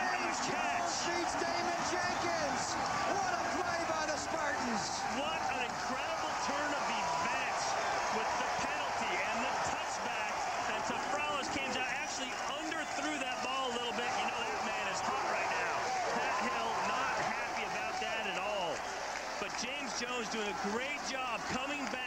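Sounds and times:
stadium crowd cheering and shouting: 0.0 - 22.0.

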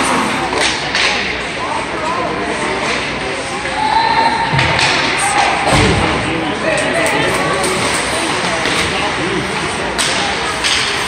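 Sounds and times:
hockey knocks and clatter: 0.5 - 1.2, 6.8 - 11.0.

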